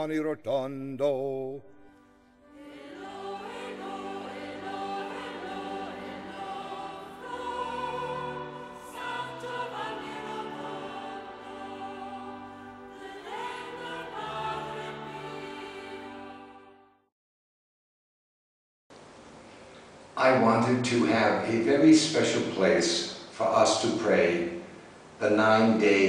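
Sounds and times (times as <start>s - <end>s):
choir singing long chords: 1.0s - 17.1s.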